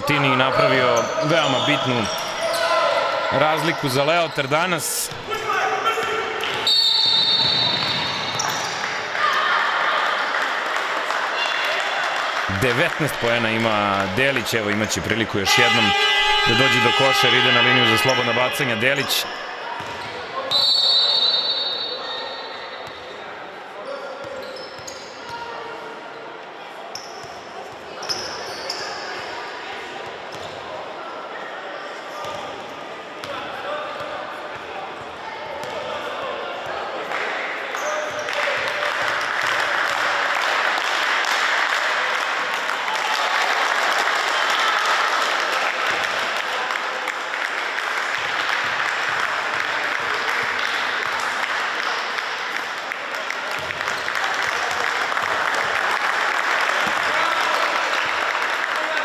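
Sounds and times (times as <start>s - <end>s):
voices of players and spectators: 0.0s - 59.0s
referee's whistle: 6.6s - 8.8s, 15.4s - 19.3s, 20.4s - 22.6s.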